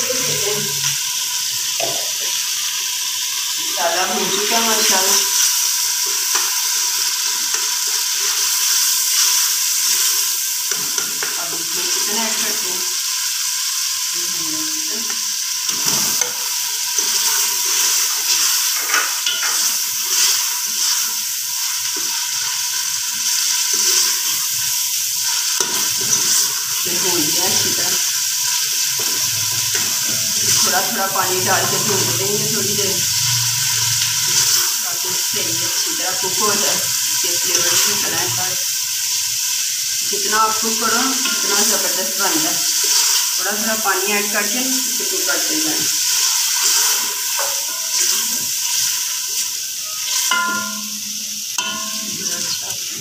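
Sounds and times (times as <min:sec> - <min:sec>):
meat sizzling in hot oil: 0:00.0 - 0:53.0.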